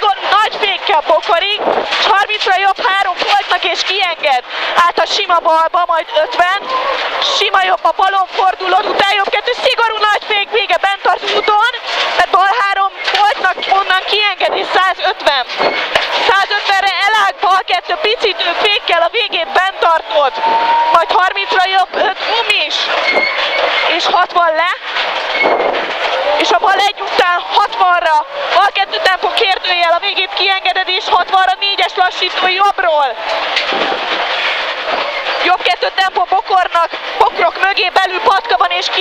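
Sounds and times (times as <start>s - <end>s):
road noise: 0.0s - 39.0s.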